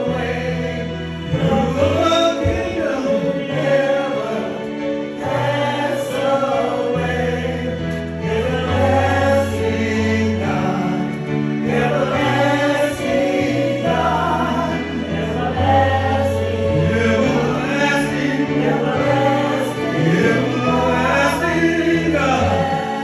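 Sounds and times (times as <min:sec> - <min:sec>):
man singing gospel song: 0:01.3 - 0:04.6, 0:08.5 - 0:23.0.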